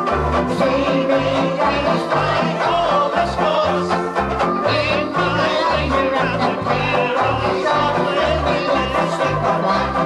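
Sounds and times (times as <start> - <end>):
banjo ukuleles strummed: 0.0 - 10.0.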